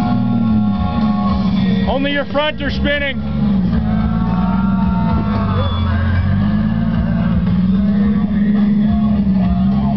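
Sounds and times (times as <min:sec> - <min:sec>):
car engine revving under load: 0:00.0 - 0:09.9.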